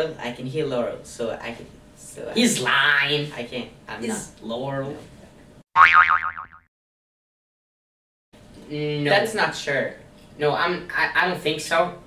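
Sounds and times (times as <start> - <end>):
cartoon boing sound effect: 5.8 - 6.7.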